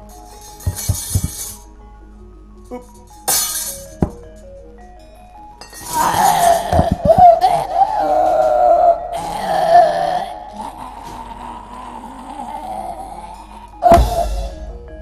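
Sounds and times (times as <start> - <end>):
gamelan music: 0.0 - 15.0
high wavering wail: 5.8 - 14.8.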